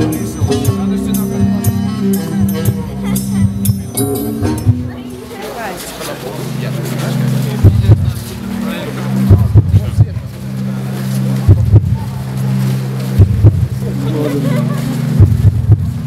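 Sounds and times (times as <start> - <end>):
deep thumping beats: 0.0 - 5.2, 6.6 - 16.0
low drone chord: 0.0 - 5.4, 6.2 - 16.0.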